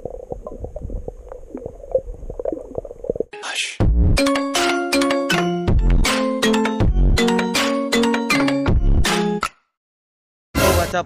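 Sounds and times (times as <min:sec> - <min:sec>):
underwater clicks and crackles: 0:00.0 - 0:03.3.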